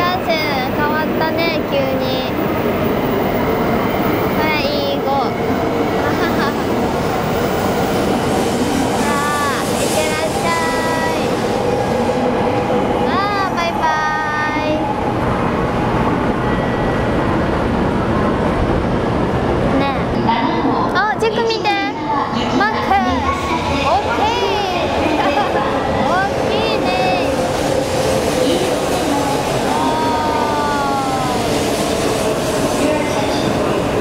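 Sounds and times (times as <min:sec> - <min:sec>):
voices: 0:00.0 - 0:07.5, 0:08.9 - 0:15.1, 0:19.6 - 0:34.0
train passing platform: 0:00.0 - 0:34.0.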